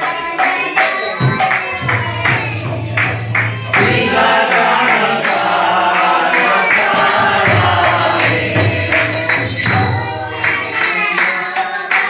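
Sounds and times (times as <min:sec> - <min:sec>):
group chanting: 0:00.0 - 0:12.0.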